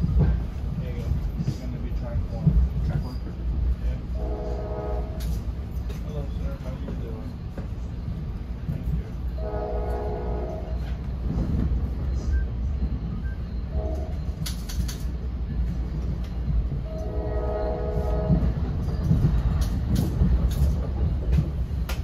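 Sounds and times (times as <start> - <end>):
train rumbling on rails: 0.0 - 22.0
train horn: 4.1 - 5.4, 9.4 - 11.0, 13.7 - 14.4, 16.8 - 18.7.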